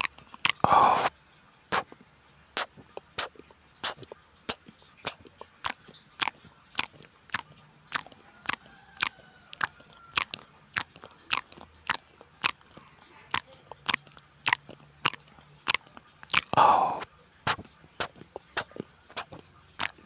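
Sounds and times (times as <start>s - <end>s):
wet chewing smacks: 0.0s - 1.1s, 1.7s - 20.0s.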